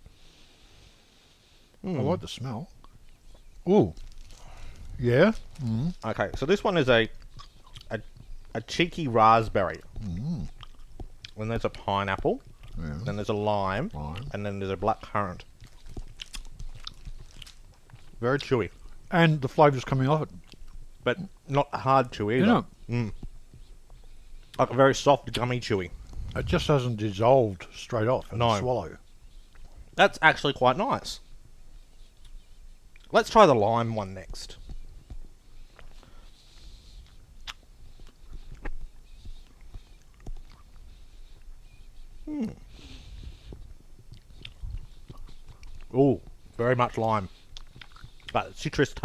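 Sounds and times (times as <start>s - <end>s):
mouth chewing gummy candy: 1.8s - 21.4s, 22.3s - 30.1s, 32.0s - 49.0s.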